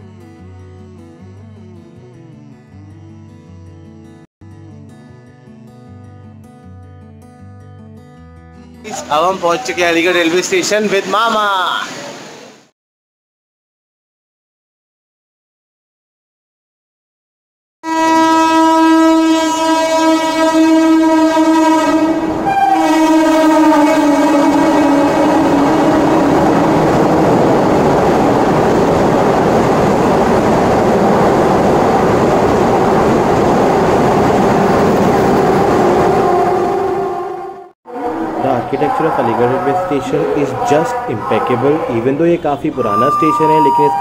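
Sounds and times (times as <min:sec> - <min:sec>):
rush of train passing: 0:08.9 - 0:12.7, 0:22.0 - 0:42.1
train horn: 0:17.8 - 0:26.9, 0:36.0 - 0:44.0.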